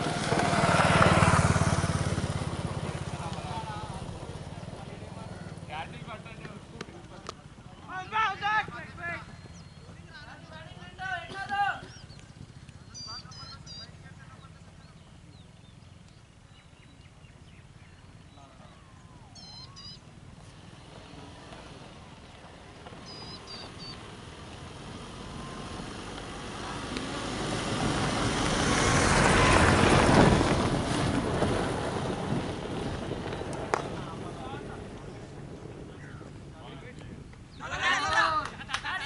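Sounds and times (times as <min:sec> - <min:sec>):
vehicle passing by: 0:00.0 - 0:39.0
small birds chirping: 0:02.3 - 0:27.7, 0:32.7 - 0:38.0.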